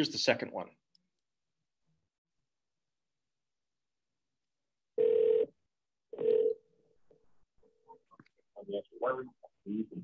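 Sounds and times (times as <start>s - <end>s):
telephone tones: 6.1s - 6.6s.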